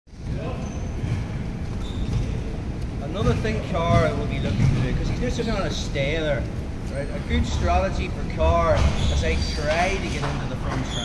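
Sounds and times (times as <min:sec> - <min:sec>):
steady low rumble: 0:00.1 - 0:10.6
dull low thuds: 0:01.0 - 0:05.4.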